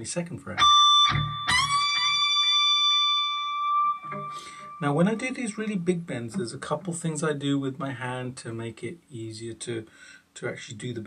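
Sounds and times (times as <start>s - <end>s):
electric guitar string bend: 0.6s - 6.5s.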